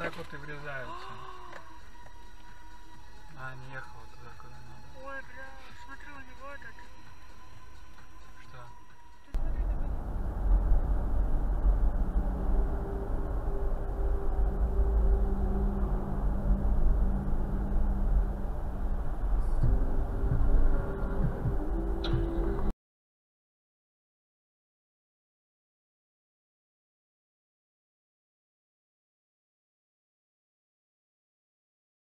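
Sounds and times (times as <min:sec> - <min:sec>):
car road and engine rumble: 0:00.0 - 0:22.7
faint voice: 0:00.8 - 0:01.7.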